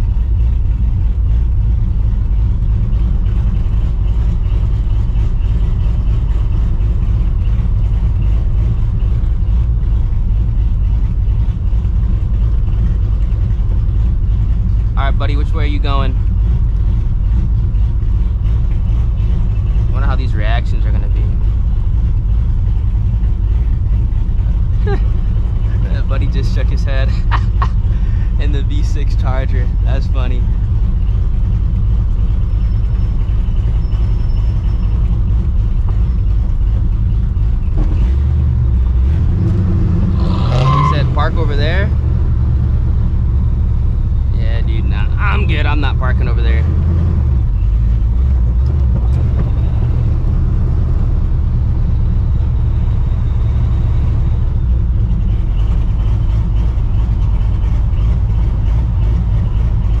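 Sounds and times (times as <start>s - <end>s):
car engine idling rumble: 0.0s - 60.0s
voices: 25.7s - 30.5s, 40.6s - 42.0s, 44.3s - 46.7s.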